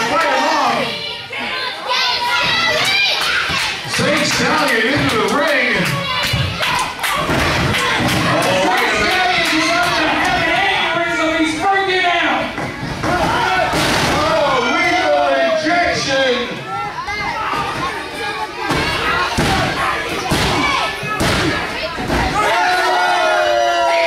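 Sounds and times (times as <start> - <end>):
crowd shouting and cheering: 0.0 - 24.0.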